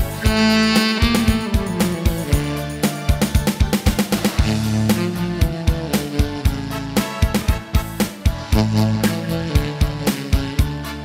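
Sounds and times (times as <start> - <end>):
backing track guitar: 0.0 - 11.0
bass: 0.0 - 11.0
steady drum beat: 0.0 - 11.0
tenor saxophone melody: 0.0 - 11.0.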